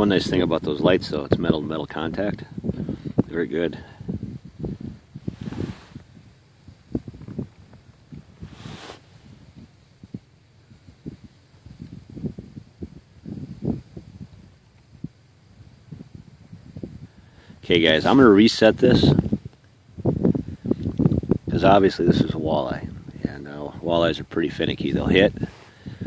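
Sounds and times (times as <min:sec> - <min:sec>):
breathy hisses: 0:08.4 - 0:09.3, 0:25.4 - 0:26.0.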